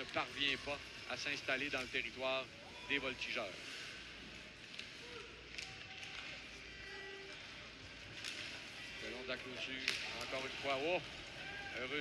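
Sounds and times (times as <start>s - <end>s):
hockey sticks and puck clicks: 4.6s - 6.6s, 7.3s - 8.8s, 9.6s - 12.0s.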